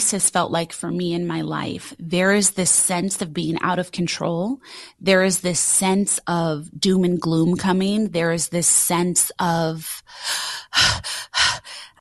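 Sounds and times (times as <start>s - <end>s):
woman's breath puffs: 10.0s - 12.0s.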